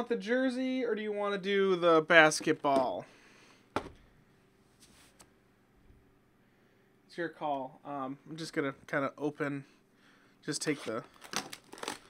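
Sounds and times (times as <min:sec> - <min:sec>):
hand knocking cardboard box: 0:03.8 - 0:04.0.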